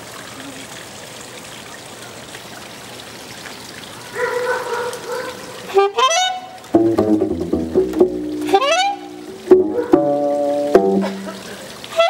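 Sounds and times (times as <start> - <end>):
saxophone: 5.7 - 6.7, 8.3 - 9.5
plucked double bass: 5.8 - 12.0.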